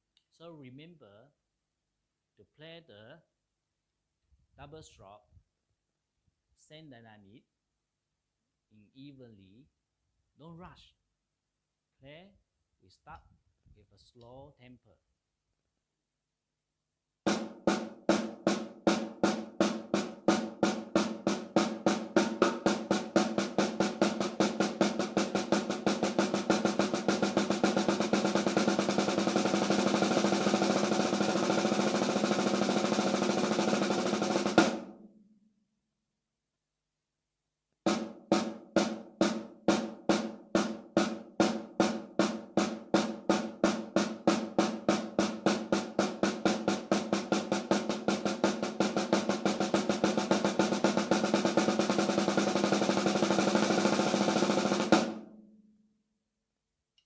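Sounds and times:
snare drum double strokes: 17.3s - 35.0s, 37.9s - 55.2s.

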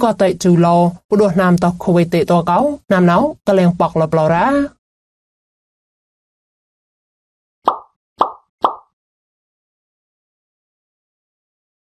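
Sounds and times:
cartoon pop sound effects: 7.6s - 9.0s.

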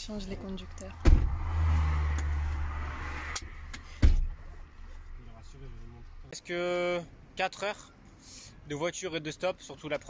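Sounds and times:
road and wind noise in car: 0.0s - 10.0s
heavy thump: 1.0s - 1.5s, 3.7s - 4.5s.

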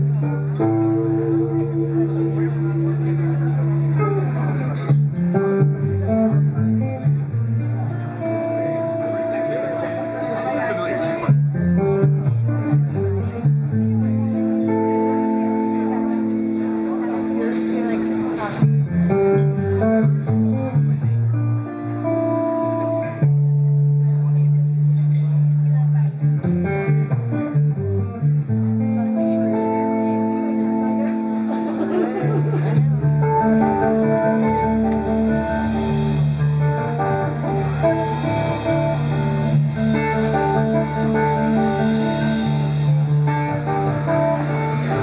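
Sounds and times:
electric guitar riff: 0.0s - 45.0s
live band music: 0.0s - 45.0s
sustained low notes: 0.0s - 45.0s
drum kit: 31.1s - 45.0s.

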